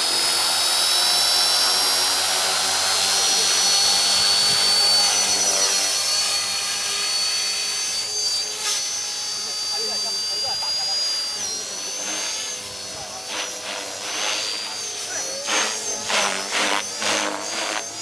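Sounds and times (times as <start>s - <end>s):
model helicopter rotor whine: 0.0s - 18.0s.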